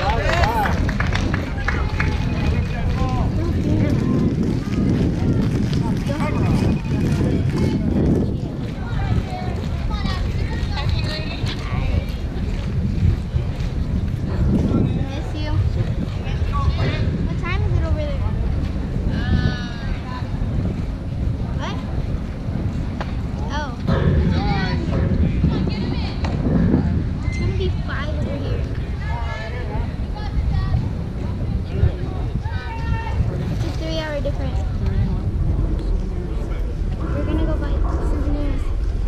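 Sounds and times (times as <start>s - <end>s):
indistinct voices talking: 0.0s - 39.0s
wind rumble on microphone: 0.0s - 39.0s.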